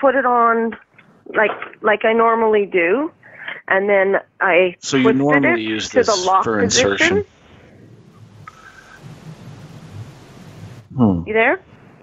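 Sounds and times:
line noise hiss: 0.0s - 12.0s
faint low murmur: 4.9s - 12.0s.

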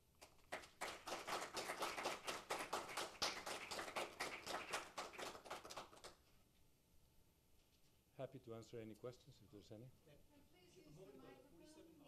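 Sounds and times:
audience applauding: 0.2s - 6.2s.

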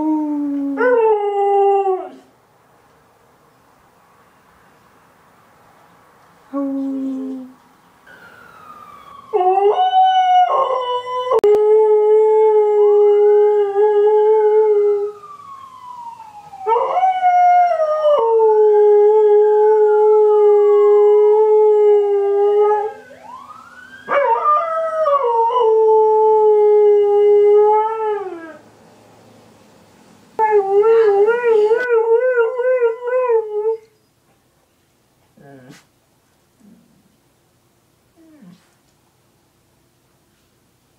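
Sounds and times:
faint siren wailing: 6.5s - 28.8s, 30.4s - 33.9s.

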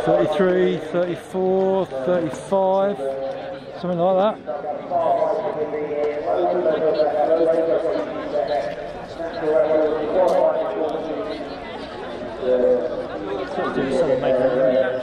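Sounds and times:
indistinct chatter: 0.0s - 15.0s.

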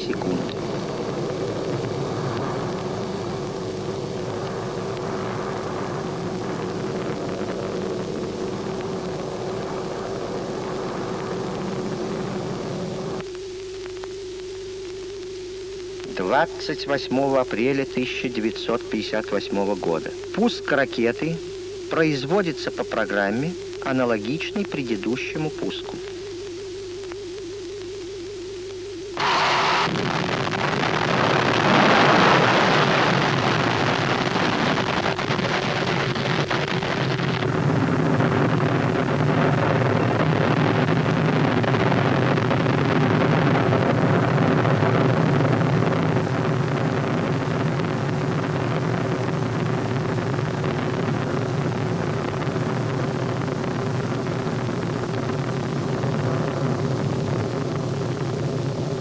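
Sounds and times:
steady rocket rumble: 0.0s - 13.2s, 29.2s - 59.0s
rocket boosters firing: 29.2s - 57.6s.

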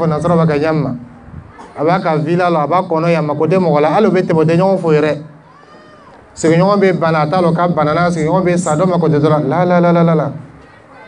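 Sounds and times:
man speaking into a microphone: 0.0s - 5.4s, 6.4s - 10.6s.

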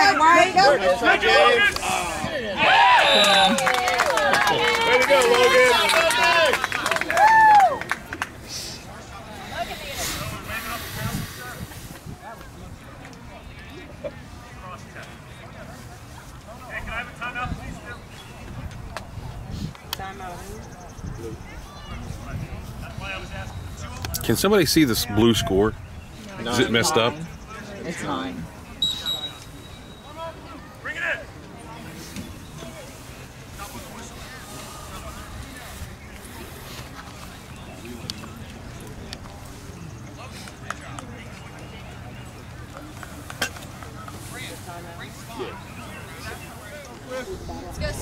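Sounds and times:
distant voices talking: 7.8s - 48.0s
wind rumbling on microphone: 9.4s - 12.9s, 17.0s - 26.5s, 47.2s - 48.0s.

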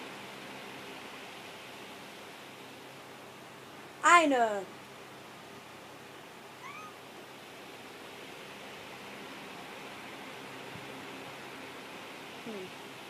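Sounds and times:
room hiss: 0.0s - 13.0s
cat meow: 6.6s - 7.0s.

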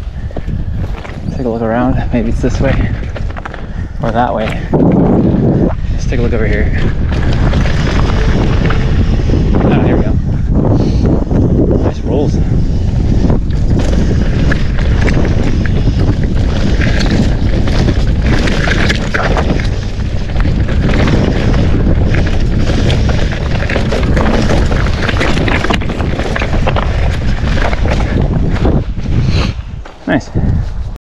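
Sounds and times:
bike tyre rumble: 0.0s - 31.0s
wind buffeting microphone: 0.0s - 31.0s
bike rattling knocks: 13.5s - 28.8s.

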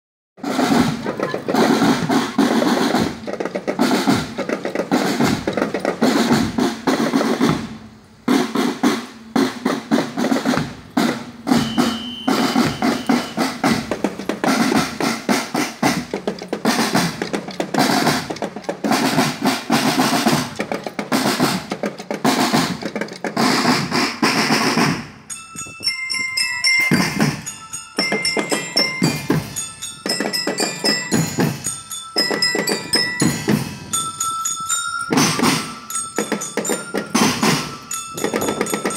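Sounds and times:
marching drums with snare rolls: 0.4s - 38.9s
high ringing melodic notes: 11.4s - 17.2s, 25.1s - 38.9s.

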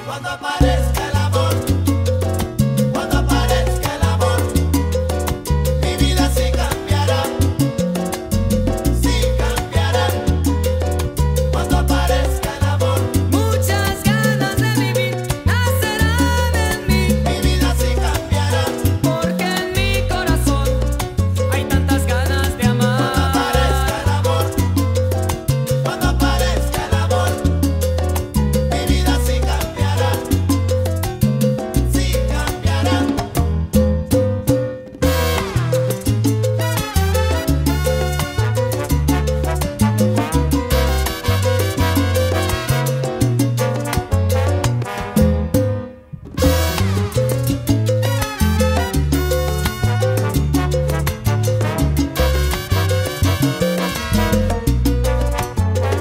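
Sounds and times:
salsa band music: 0.0s - 56.0s.

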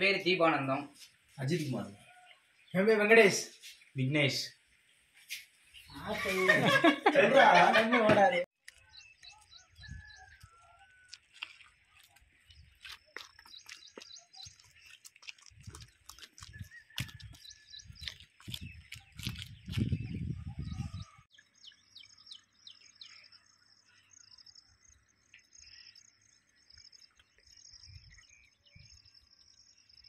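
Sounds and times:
birds chirping and calling: 8.7s - 30.0s.

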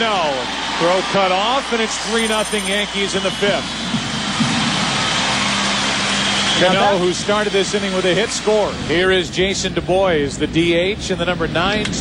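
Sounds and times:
crowd cheering: 0.0s - 8.8s.

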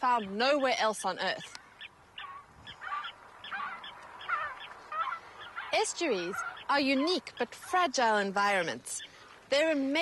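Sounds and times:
flock of birds calling: 0.0s - 9.8s.

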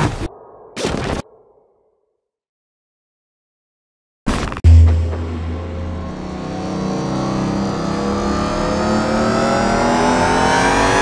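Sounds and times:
deep low boom: 4.6s - 9.9s
racing car engine revving: 4.7s - 11.0s.

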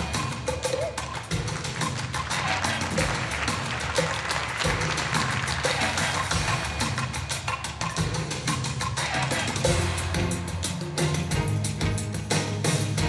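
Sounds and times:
dance music with fast percussion beat: 0.0s - 13.0s.

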